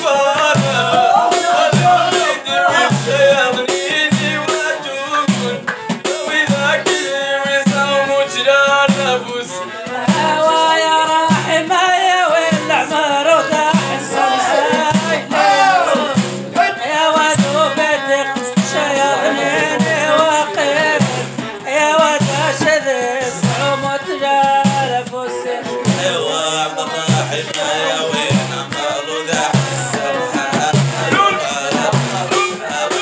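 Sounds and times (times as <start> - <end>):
drums and percussion beat: 0.0 - 33.0
instrumental accompaniment: 0.0 - 33.0
person singing: 0.0 - 33.0.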